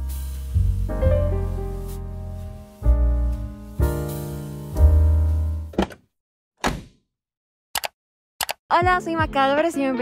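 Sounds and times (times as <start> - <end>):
deep piano chord: 0.8 - 5.7.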